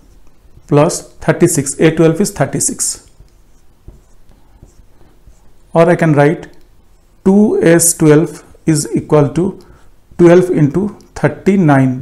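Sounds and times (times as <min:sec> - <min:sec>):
marker writing on whiteboard: 0:00.0 - 0:11.5.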